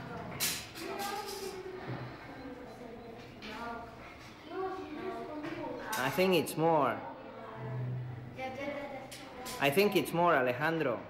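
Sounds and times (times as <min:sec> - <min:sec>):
quiet indistinct voices talking: 0:00.0 - 0:10.4.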